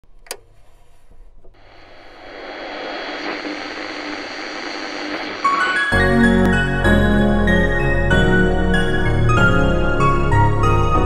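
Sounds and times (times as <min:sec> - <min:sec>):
click: 0:00.2 - 0:00.5
rushing wash of noise: 0:01.6 - 0:07.0
keyboard music: 0:05.5 - 0:11.0.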